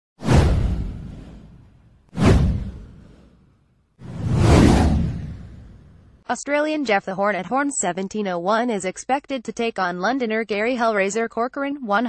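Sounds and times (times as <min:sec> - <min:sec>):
deep rumble: 0:00.2 - 0:03.3, 0:04.0 - 0:06.2
whoosh sound effects: 0:00.2 - 0:06.2.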